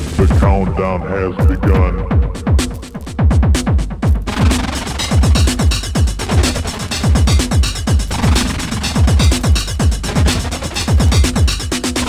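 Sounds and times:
techno drum hits: 0:00.0 - 0:12.0.

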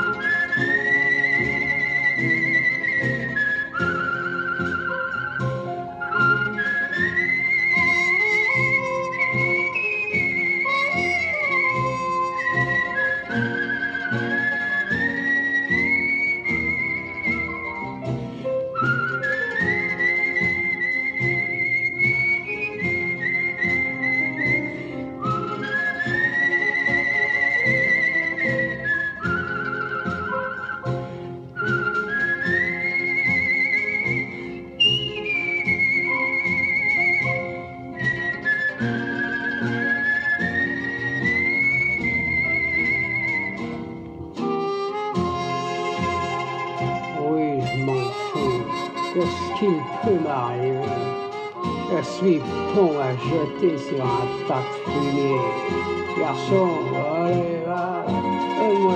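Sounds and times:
band accompaniment: 0:00.0 - 0:58.9
whistled melody with vibrato: 0:00.0 - 0:58.9.

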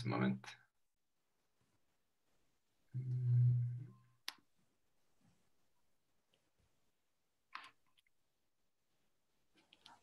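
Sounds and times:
person humming: 0:02.9 - 0:04.0.

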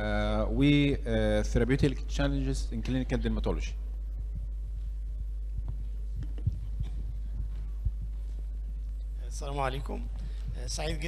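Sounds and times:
sound system hum: 0:00.0 - 0:11.0
microphone handling thumps: 0:04.2 - 0:09.2.

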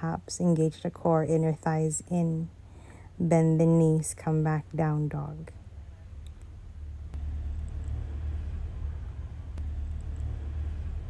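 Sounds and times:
low steady rumble: 0:00.0 - 0:11.0
faint clicks: 0:06.2 - 0:06.5.

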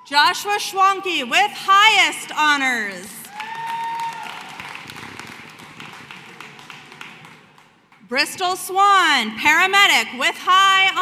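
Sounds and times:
crowd cheering: 0:03.2 - 0:07.5
audience applause: 0:03.2 - 0:07.8.

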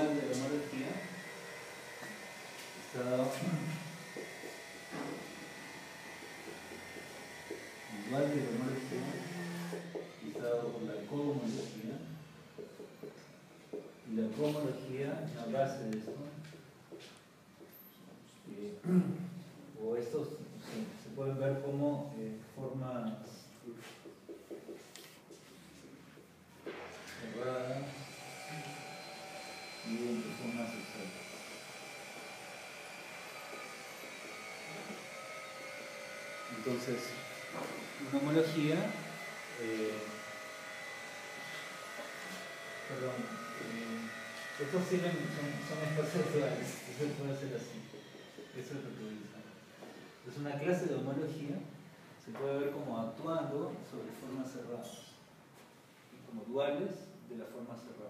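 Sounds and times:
scratches and taps writing on board: 0:04.1 - 0:05.2, 0:06.3 - 0:07.7, 0:12.6 - 0:14.0, 0:23.8 - 0:26.3.

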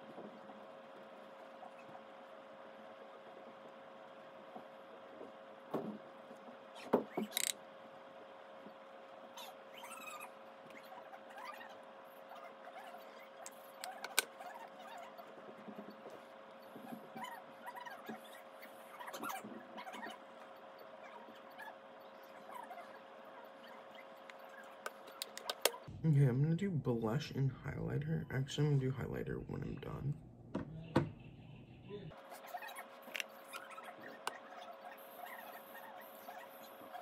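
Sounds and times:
faint steady hum: 0:00.0 - 0:37.0
makeup products clicking: 0:24.9 - 0:25.8.

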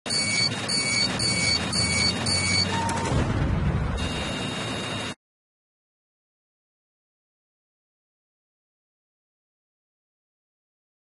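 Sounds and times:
electronic beeps: 0:00.1 - 0:03.2, 0:04.0 - 0:05.2.

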